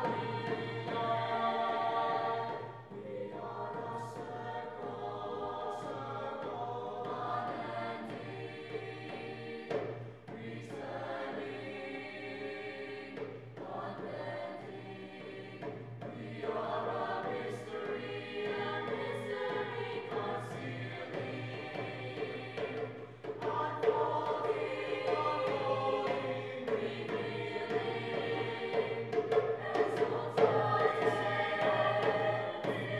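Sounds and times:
choir singing in harmony: 0:00.0 - 0:32.9.

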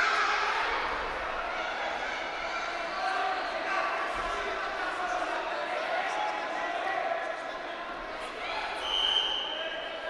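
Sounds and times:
referee's whistle: 0:08.8 - 0:09.6.

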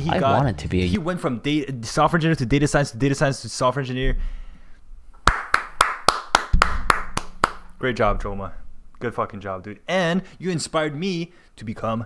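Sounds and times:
person clapping hands: 0:05.2 - 0:07.7.

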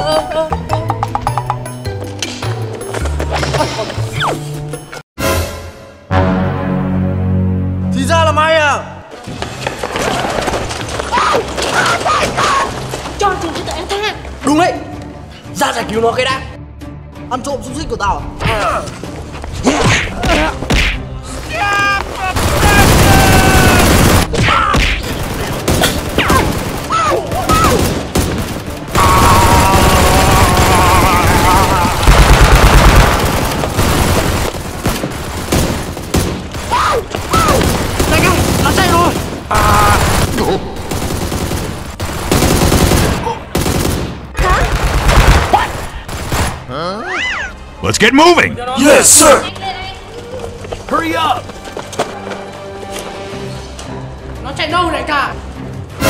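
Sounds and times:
people shouting: 0:11.0 - 0:12.9, 0:21.3 - 0:25.1, 0:25.9 - 0:27.9, 0:28.9 - 0:33.0, 0:36.6 - 0:40.6
rapid gunfire bursts: 0:22.3 - 0:24.4, 0:25.0 - 0:31.3, 0:32.0 - 0:46.6.

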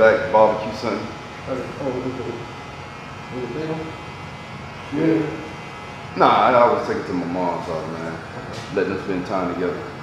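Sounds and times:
electric hair clipper running: 0:00.0 - 0:10.0.

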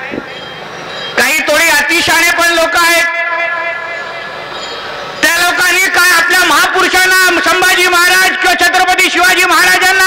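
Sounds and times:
voice over loudspeakers: 0:00.0 - 0:00.3, 0:01.2 - 0:04.3, 0:05.2 - 0:10.0
ringing tones from loudspeakers: 0:00.0 - 0:10.0.

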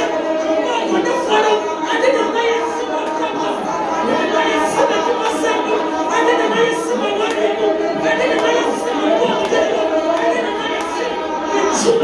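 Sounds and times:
women singing together: 0:00.0 - 0:12.0.

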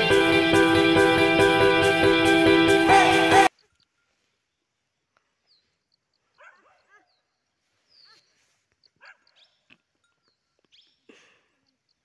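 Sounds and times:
faint dog barking and yelping: 0:06.3 - 0:07.2, 0:08.9 - 0:09.5.

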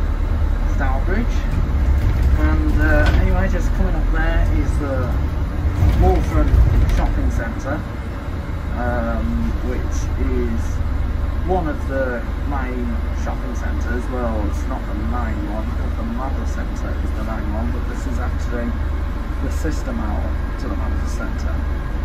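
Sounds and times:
bus engine rumble: 0:00.0 - 0:22.0.

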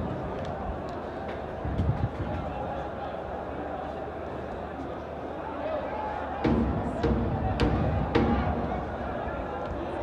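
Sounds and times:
crowd murmur in stadium: 0:00.0 - 0:10.0
booming drum beats: 0:06.4 - 0:09.3.

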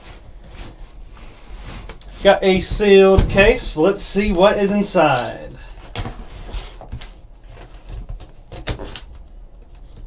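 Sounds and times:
steady low hum: 0:00.0 - 0:08.5.

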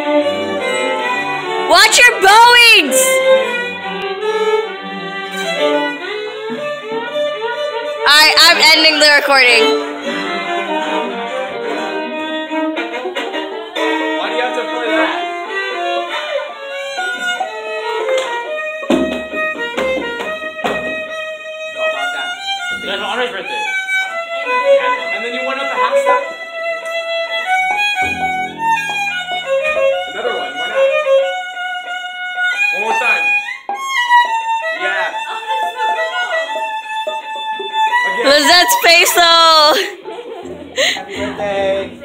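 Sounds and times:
two violins playing: 0:00.0 - 0:40.0.

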